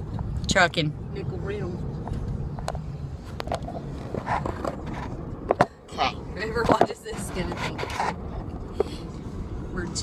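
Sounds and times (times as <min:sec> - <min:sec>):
car cabin low rumble: 0:00.0 - 0:10.0
voices: 0:05.9 - 0:08.0.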